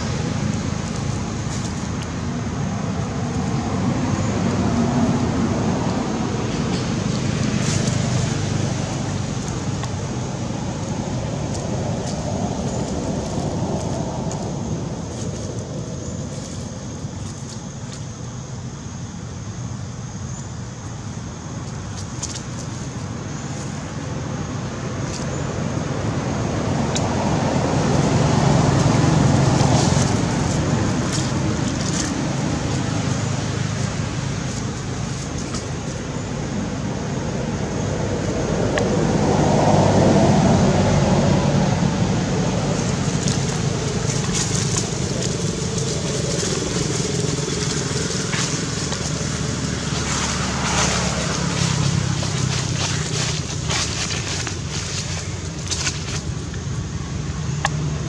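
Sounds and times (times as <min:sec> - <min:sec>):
low outdoor rumble: 0:00.0 - 0:58.0.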